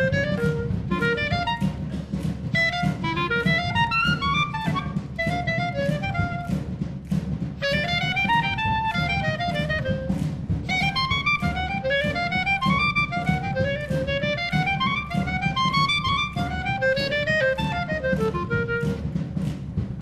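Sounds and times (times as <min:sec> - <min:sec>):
solo clarinet playing fast runs: 0:00.0 - 0:19.6
steady percussion beat: 0:00.0 - 0:20.0
wind band accompaniment: 0:00.0 - 0:20.0.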